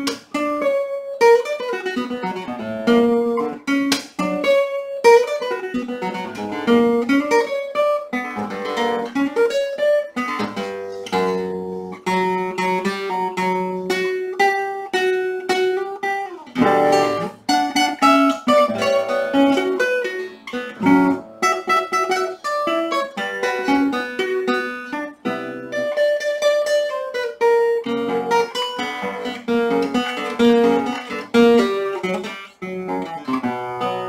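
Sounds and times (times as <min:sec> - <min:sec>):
classical guitar fingerstyle: 0:00.0 - 0:34.0.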